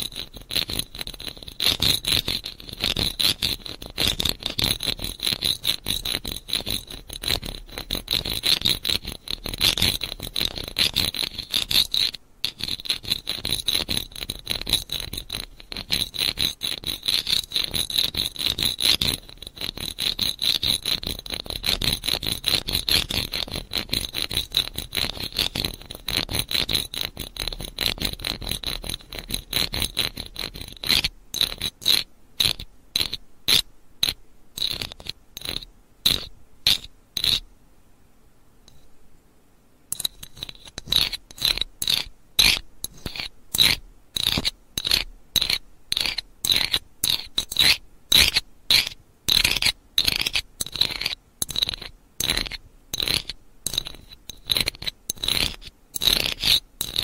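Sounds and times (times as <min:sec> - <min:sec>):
rapid small clicks and scrapes: 0:00.0 - 0:37.4, 0:38.7 - 0:38.9, 0:39.9 - 0:57.0.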